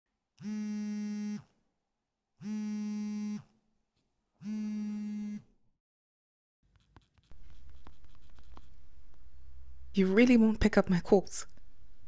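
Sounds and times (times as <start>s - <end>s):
phone buzzing: 0.4s - 1.5s, 2.4s - 3.5s, 4.4s - 5.4s.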